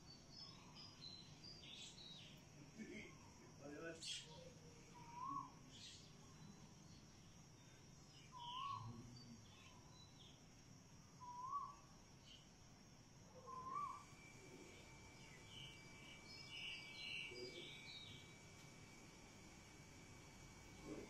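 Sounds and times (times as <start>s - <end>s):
bird whistled notes: 13.4s - 14.0s.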